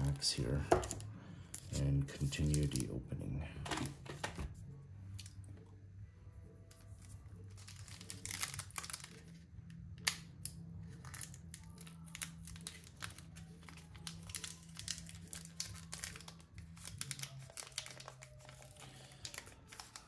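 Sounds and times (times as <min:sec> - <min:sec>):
foil wrappers crinkling: 0:06.8 - 0:09.4, 0:10.8 - 0:20.0.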